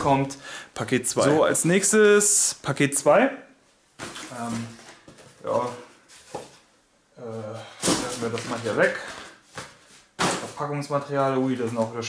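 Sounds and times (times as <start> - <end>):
cardboard packaging rustling: 7.8 - 10.6.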